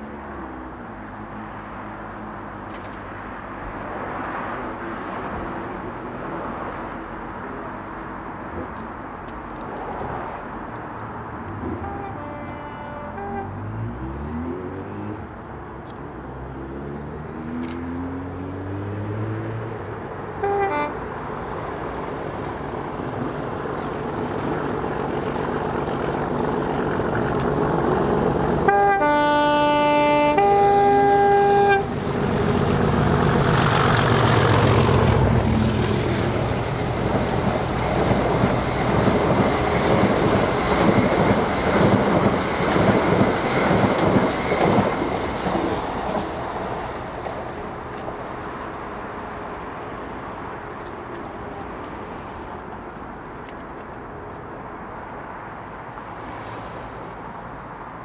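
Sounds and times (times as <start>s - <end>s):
diesel locomotive engine: 0.0s - 17.0s, 19.8s - 58.0s
locomotive horn: 11.6s - 13.8s, 20.4s - 21.0s, 28.6s - 32.0s
train wheels clattering on rails: 32.1s - 49.0s.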